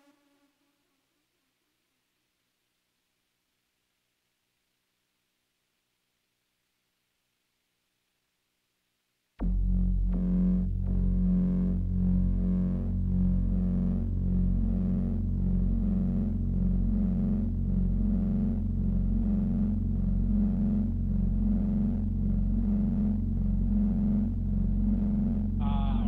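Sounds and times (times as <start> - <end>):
deep synth drone: 9.4 - 26.0
pulsing bass pattern: 9.4 - 26.0.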